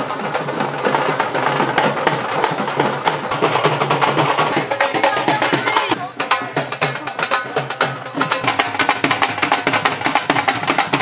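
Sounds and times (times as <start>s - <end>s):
barrel drums beaten with sticks: 0.0s - 11.0s.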